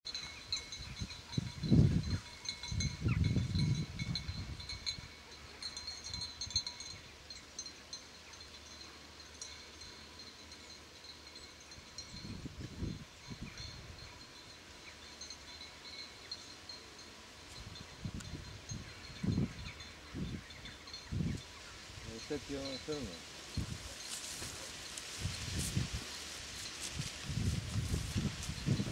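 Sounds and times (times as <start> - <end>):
faint high tinkling ringing: 0.1 - 28.9
wind buffeting microphone: 0.6 - 5.1, 12.0 - 14.1, 17.6 - 28.9.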